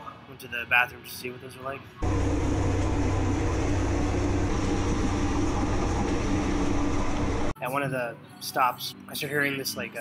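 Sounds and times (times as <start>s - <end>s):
train rumbling on track: 2.0s - 7.5s
rushing air: 2.0s - 7.6s.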